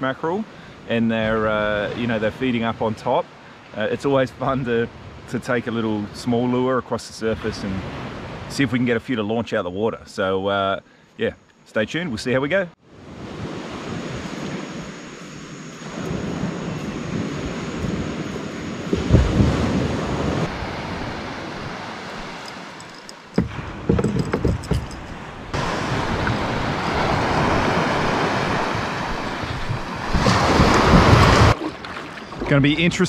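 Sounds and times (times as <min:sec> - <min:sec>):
water and small waves washing: 0:00.0 - 0:09.2, 0:12.8 - 0:33.0
wind on microphone: 0:13.0 - 0:22.7, 0:23.4 - 0:33.0.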